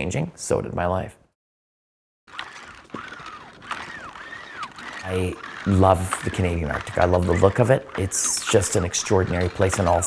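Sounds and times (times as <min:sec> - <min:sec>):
faint clicks: 0:02.3 - 0:10.0
sled squeaking on ice: 0:02.3 - 0:10.0.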